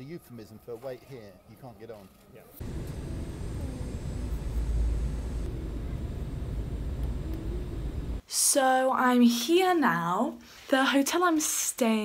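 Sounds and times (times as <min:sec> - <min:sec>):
airliner cabin engine rumble: 0:02.6 - 0:08.2.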